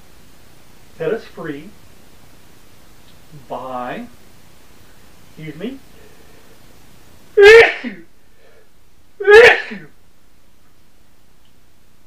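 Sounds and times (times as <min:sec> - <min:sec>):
man sneezing loudly: 0:07.4 - 0:08.1, 0:09.2 - 0:09.9.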